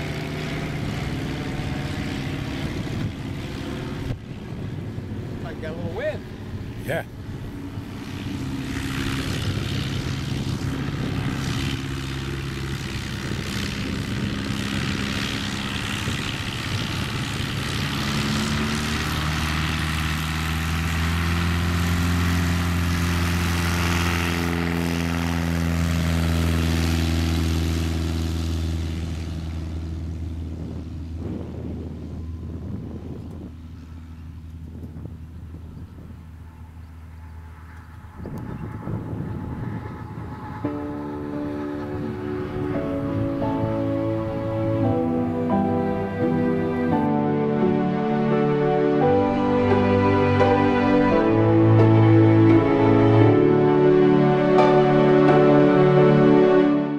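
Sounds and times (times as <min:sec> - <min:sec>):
plane engine and propeller: 0:00.0 - 0:56.9.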